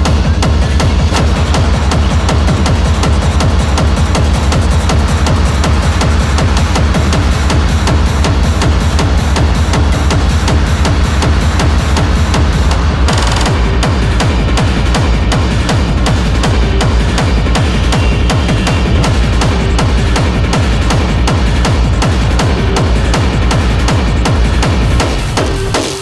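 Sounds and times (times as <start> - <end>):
hard techno music: 0.0 - 26.0.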